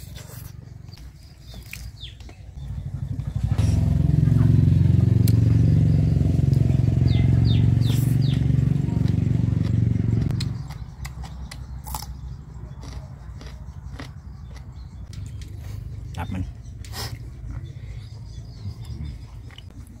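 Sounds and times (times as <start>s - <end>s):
motorcycle engine passing: 2.6s - 11.8s.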